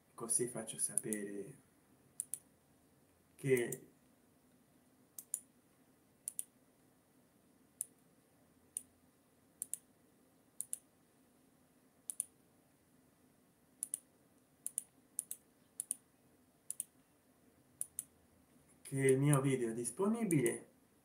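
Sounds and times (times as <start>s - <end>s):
computer mouse clicking: 1.0s - 1.2s, 2.2s - 2.5s, 5.2s - 5.5s, 6.3s - 6.5s, 9.6s - 9.9s, 10.6s - 10.8s, 12.1s - 12.3s, 13.8s - 16.0s, 16.7s - 17.0s, 17.8s - 18.1s, 19.0s - 19.5s.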